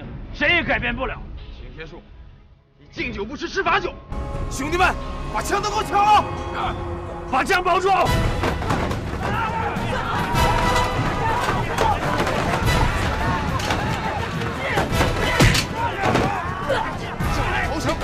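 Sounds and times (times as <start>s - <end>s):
dramatic action music: 3.8s - 18.0s
men shouting: 5.4s - 18.0s.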